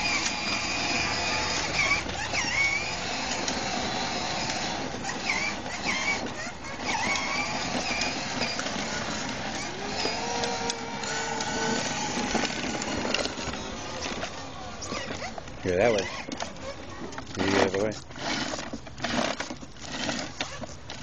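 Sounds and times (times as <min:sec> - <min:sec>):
electric motor whirring: 0:00.0 - 0:21.0
plastic wheels rattling on concrete: 0:00.0 - 0:21.0.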